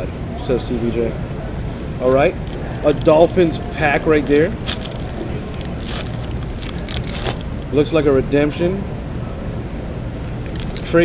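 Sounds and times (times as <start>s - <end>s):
low steady hum: 0.0s - 11.0s
foil wrapper crinkling: 2.0s - 7.8s, 10.2s - 11.0s.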